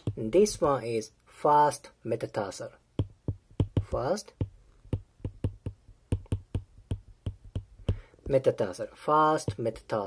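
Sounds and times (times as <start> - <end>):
stylus tapping on glass screen: 3.0 - 8.4.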